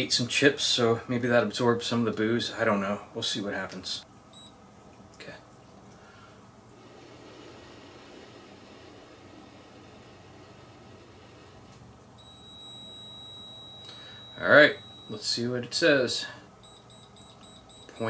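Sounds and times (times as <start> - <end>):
high electronic beeps: 12.2 - 15.2, 16.6 - 18.0.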